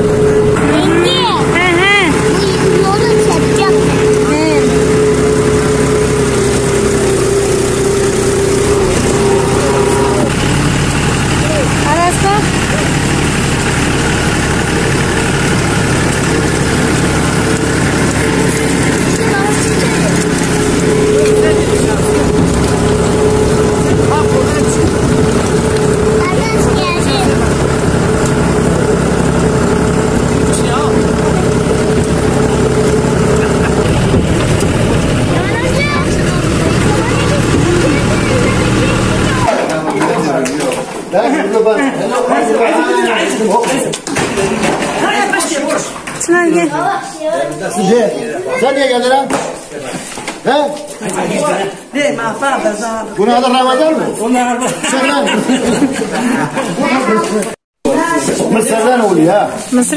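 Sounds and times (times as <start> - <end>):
tractor engine running: 0.0 - 39.6.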